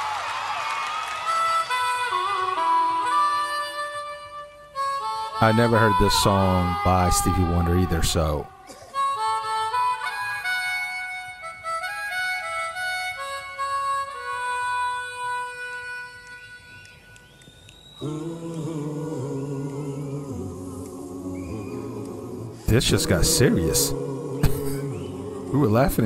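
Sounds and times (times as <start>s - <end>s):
harmonica melody: 1.2s - 26.0s.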